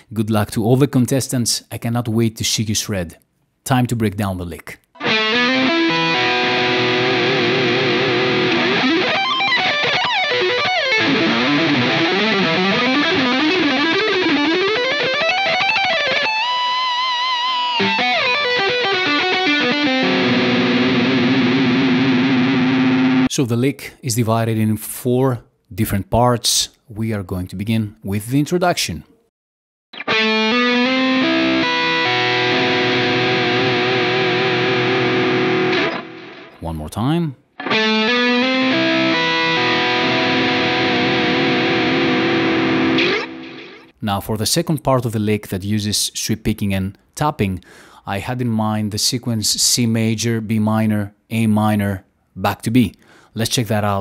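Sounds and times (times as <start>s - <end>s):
distorted electric guitar lick: 5.0s - 23.3s, 30.0s - 36.6s, 37.6s - 44.0s.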